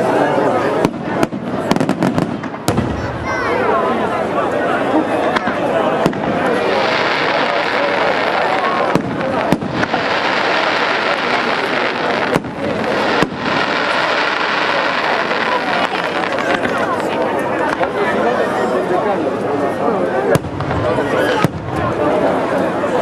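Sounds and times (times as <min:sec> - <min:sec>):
firework bangs: 0:00.7 - 0:03.7, 0:05.3 - 0:17.9, 0:20.3 - 0:22.4.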